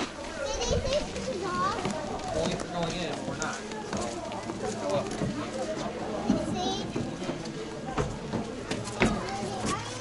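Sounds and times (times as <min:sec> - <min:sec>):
children's voices: 0:00.0 - 0:02.6, 0:03.5 - 0:10.0
chatter of people: 0:00.0 - 0:10.0.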